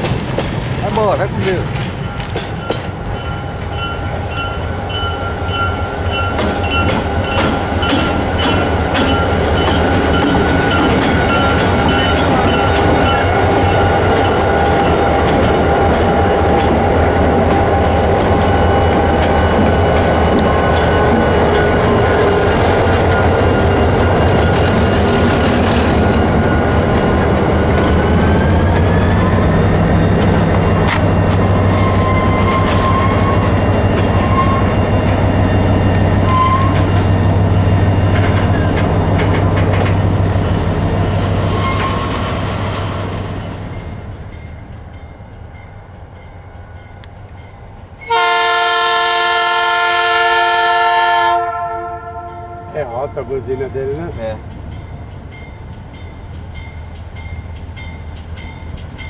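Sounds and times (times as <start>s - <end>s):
train wheel clatter: 0.0s - 43.9s
diesel locomotive engine drone: 0.0s - 59.0s
locomotive air horn chord: 48.0s - 52.8s.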